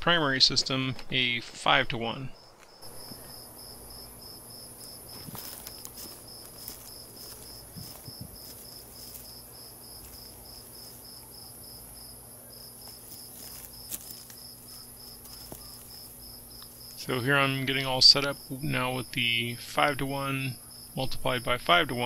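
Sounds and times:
low steady hum: 0:00.0 - 0:22.0
cricket chirping: 0:02.1 - 0:22.0
high insect hiss: 0:02.4 - 0:22.0.

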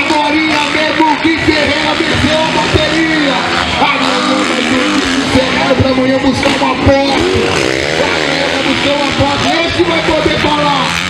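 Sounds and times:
dirt bike engines revving: 0:00.0 - 0:11.0.

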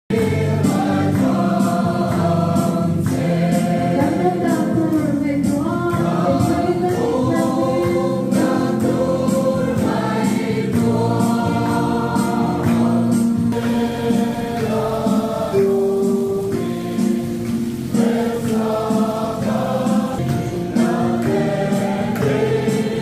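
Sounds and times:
people singing together: 0:00.1 - 0:23.0
hand clapping: 0:00.7 - 0:04.3, 0:07.4 - 0:14.7, 0:17.4 - 0:22.9.

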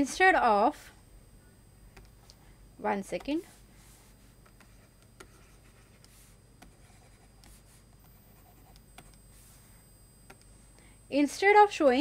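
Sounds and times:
stylus scratching on tablet: 0:03.1 - 0:09.8.

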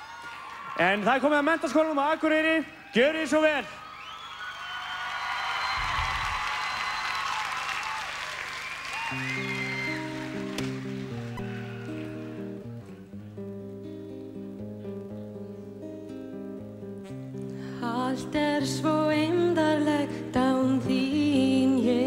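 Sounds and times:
audience applause: 0:00.0 - 0:02.2, 0:03.8 - 0:13.0
whistles: 0:03.8 - 0:07.5, 0:08.5 - 0:10.2.

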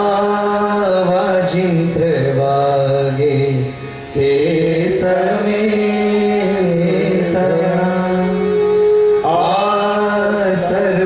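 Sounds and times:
man singing devotional chant: 0:00.0 - 0:11.0
musical accompaniment: 0:00.0 - 0:11.0.

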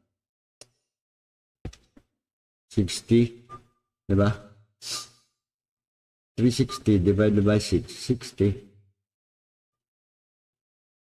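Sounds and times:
man speaking: 0:04.1 - 0:04.5, 0:06.4 - 0:08.7.

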